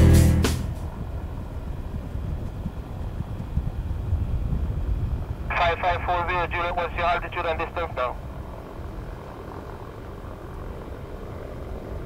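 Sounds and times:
propeller engines droning: 0.0 - 12.0.

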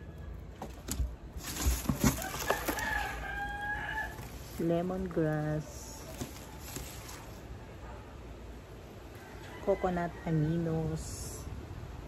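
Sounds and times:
rooster crowing: 2.0 - 4.5, 9.1 - 10.4.

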